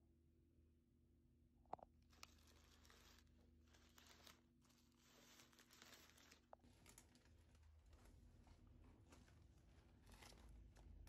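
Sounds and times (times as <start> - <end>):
cellophane wrapping crinkling: 2.0 - 11.0.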